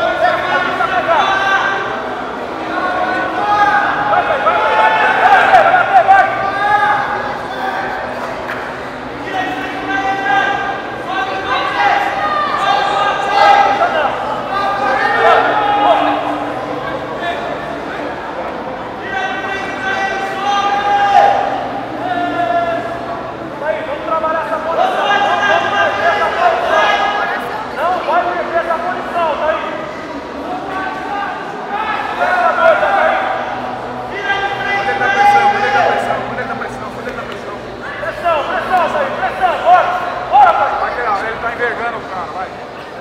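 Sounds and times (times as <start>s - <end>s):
voices shouting in echoing hall: 0.0s - 43.0s.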